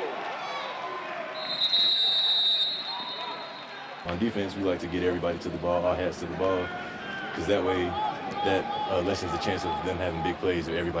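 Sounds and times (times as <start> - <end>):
referee's whistle blast: 1.4 - 4.0.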